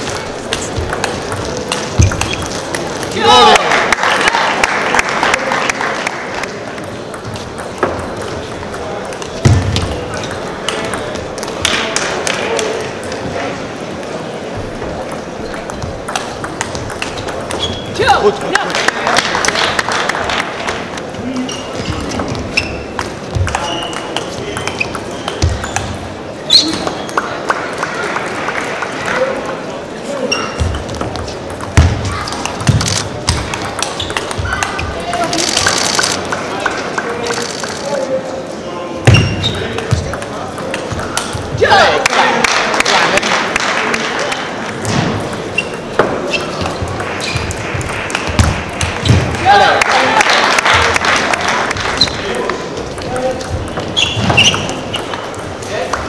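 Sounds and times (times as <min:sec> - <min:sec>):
sports hall background: 0:00.0 - 0:56.0.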